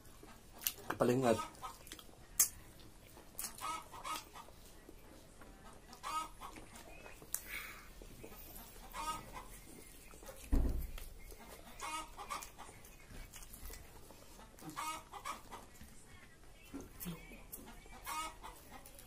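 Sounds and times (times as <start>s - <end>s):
chickens clucking: 0.0s - 19.0s.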